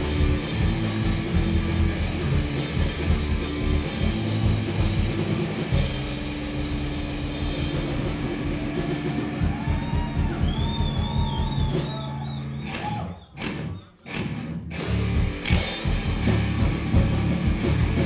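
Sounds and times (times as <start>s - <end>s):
bass guitar: 0.0s - 18.0s
distorted electric guitar: 0.0s - 18.0s
drum kit: 0.0s - 18.0s.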